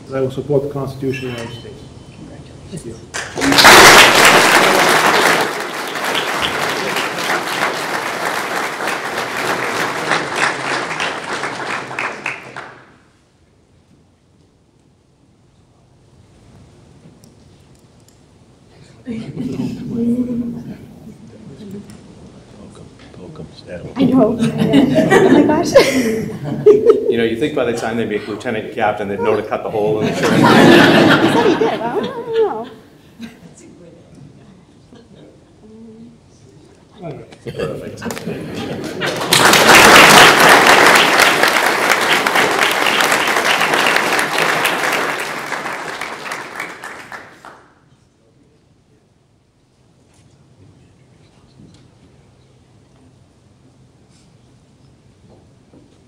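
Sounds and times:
audience applauding: 3.1 - 13.0, 38.1 - 47.7.

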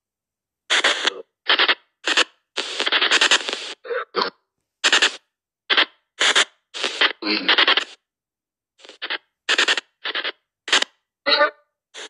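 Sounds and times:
chopped radio sound bursts: 0.7 - 8.0, 8.8 - 12.0.

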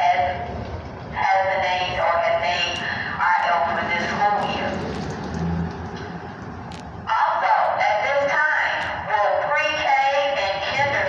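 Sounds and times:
background noise: 0.0 - 11.0.

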